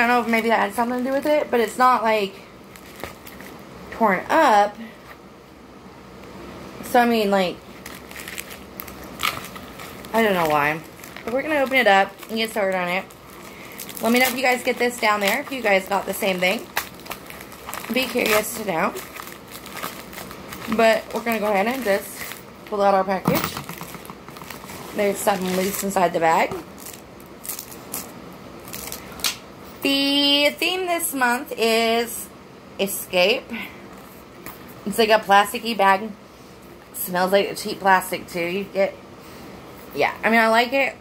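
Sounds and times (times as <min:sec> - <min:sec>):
plastic packaging rustling: 0:02.6 - 0:03.6, 0:07.7 - 0:29.3
plastic mailer crinkling: 0:07.8 - 0:29.2.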